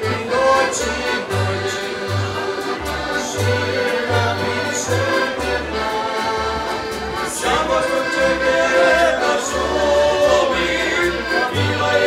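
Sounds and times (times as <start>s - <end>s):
accordion: 0.0s - 12.0s
acoustic guitar: 0.0s - 12.0s
double bass: 0.0s - 12.0s
men singing in harmony: 0.0s - 12.0s
plucked lutes: 0.0s - 12.0s.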